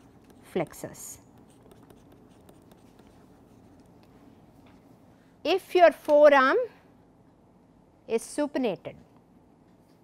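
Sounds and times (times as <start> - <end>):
stylus scratching on tablet screen: 0.0 - 4.0.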